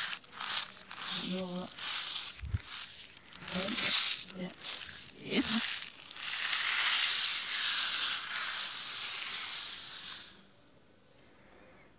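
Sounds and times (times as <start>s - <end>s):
beans rattling on floor reversed: 0.0s - 10.5s.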